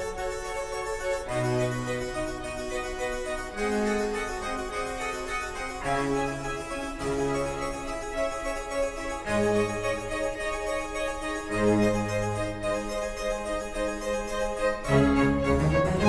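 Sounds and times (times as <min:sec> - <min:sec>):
harpsichord playing: 0:00.0 - 0:16.0
strings accompanying: 0:00.0 - 0:16.0.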